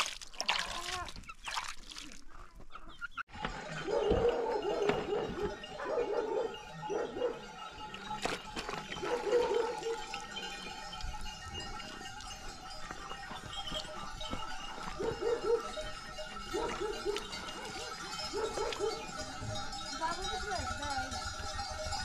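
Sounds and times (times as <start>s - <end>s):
wet skins squelching: 0.0s - 2.6s.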